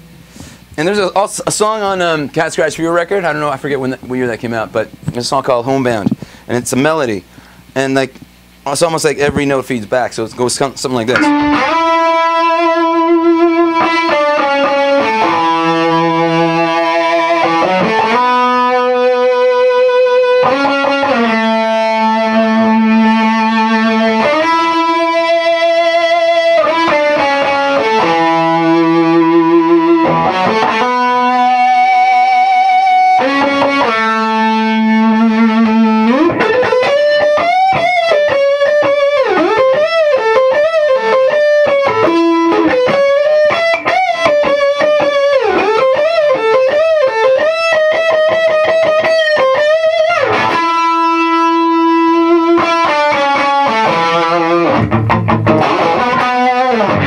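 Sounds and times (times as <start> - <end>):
electric guitar with feedback: 11.0 - 57.0.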